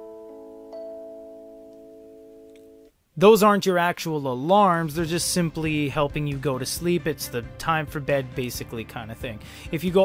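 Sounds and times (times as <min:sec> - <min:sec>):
soft plucked-string chord: 0:00.0 - 0:02.9.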